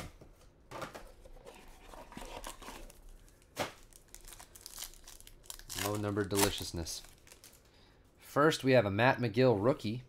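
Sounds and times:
foil wrapper crinkling: 2.4s - 7.7s
sharp foil crackle: 2.9s - 7.6s.

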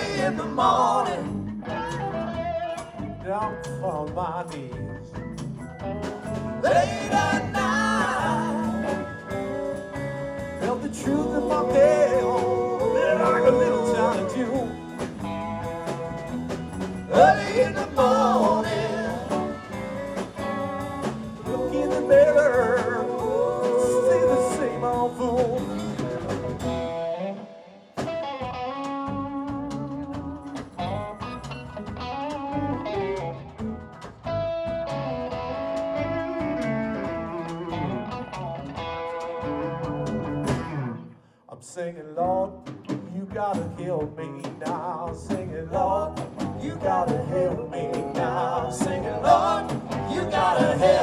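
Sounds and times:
electric guitars bending notes: 0.0s - 3.7s, 5.4s - 41.2s
drums: 0.0s - 51.0s.

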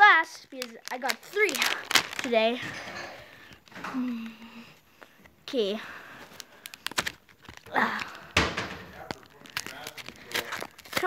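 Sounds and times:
foil wrapper crinkling: 0.0s - 5.1s, 6.0s - 11.0s
foil wrapper ripping: 0.4s - 2.6s, 6.3s - 11.0s.

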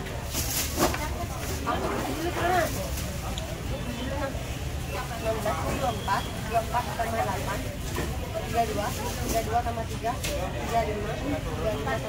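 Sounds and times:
shoppers and vendors talking: 0.0s - 12.0s.

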